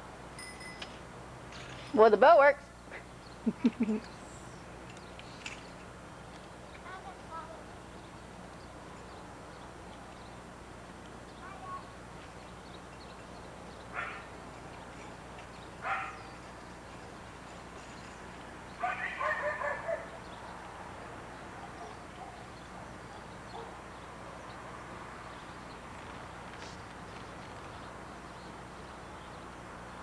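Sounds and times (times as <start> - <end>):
dog barking: 13.9 - 14.3, 15.8 - 16.3, 18.8 - 20.2, 21.6 - 22.4, 23.1 - 23.8.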